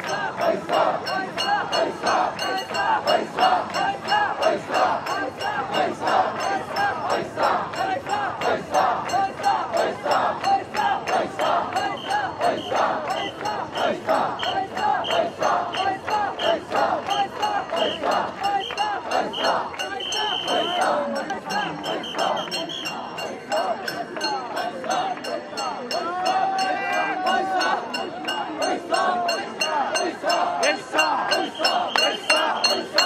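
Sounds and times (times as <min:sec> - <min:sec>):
crowd shouting rhythmic chant: 0:00.0 - 0:33.0.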